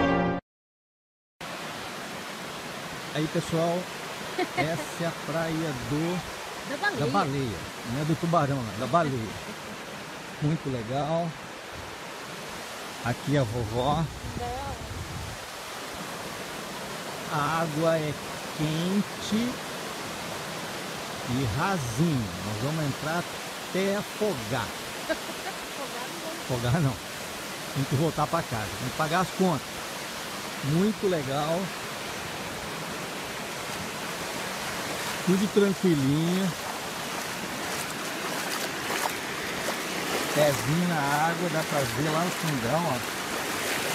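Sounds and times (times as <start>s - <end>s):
small waves breaking on sand: 1.4s - 43.9s
bare foot splashing in water: 36.7s - 43.9s.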